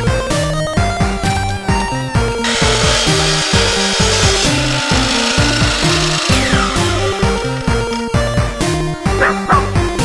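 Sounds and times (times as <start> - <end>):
miter saw cutting wood: 2.4 - 8.7.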